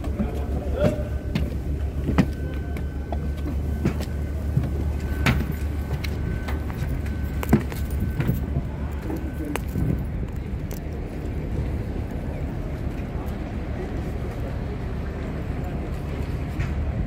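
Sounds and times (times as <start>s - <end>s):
footsteps on metal stairs: 0.0s - 10.1s
low rumble: 0.0s - 17.0s.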